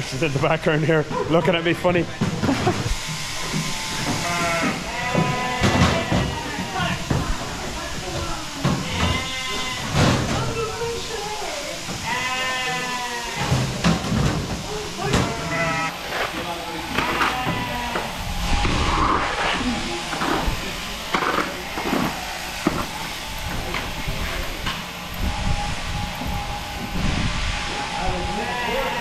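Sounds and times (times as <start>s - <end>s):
sheep bleating: 3.6s - 6.7s, 8.8s - 10.0s, 12.0s - 13.6s, 15.0s - 16.0s, 16.8s - 18.2s, 28.4s - 29.0s.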